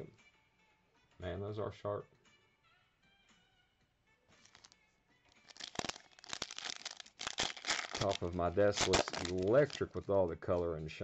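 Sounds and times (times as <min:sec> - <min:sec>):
foil wrapper tearing and crinkling: 0:04.4 - 0:04.8, 0:05.4 - 0:09.8.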